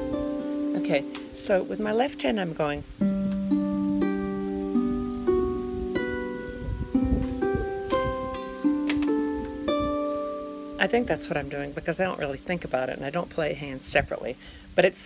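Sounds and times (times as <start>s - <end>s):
harp plucking bass notes: 0.0s - 14.1s.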